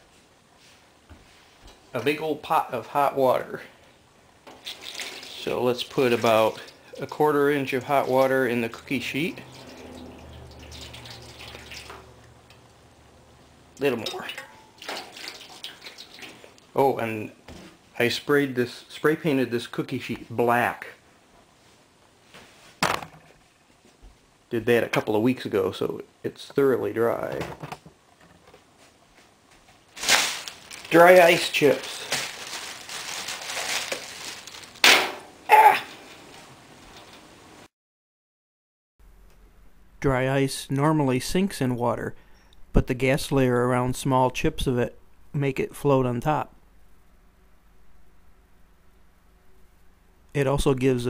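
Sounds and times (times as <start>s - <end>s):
water pouring into metal tray: 4.6s - 12.2s, 14.0s - 16.5s.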